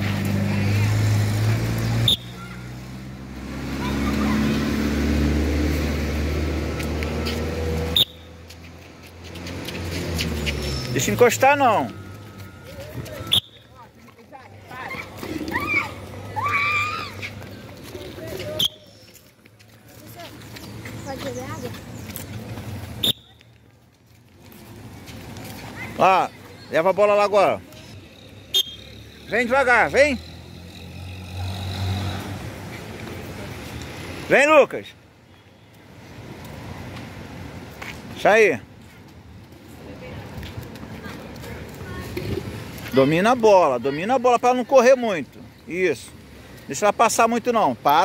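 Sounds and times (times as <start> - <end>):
outdoor background noise: 0.0 - 48.0
faint children's voices: 3.6 - 5.0, 40.2 - 42.7
sneaker footsteps on concrete: 6.5 - 26.6.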